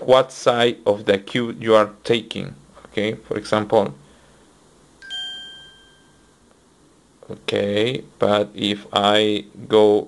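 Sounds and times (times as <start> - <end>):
electronic chime ding: 5.0 - 6.4.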